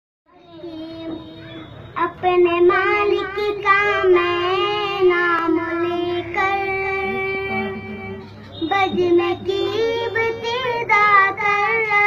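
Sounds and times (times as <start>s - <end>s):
boy singing solo: 0.3s - 12.0s.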